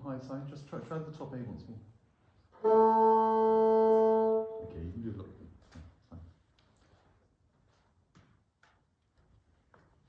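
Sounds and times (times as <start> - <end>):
bassoon held note: 2.6 - 4.7.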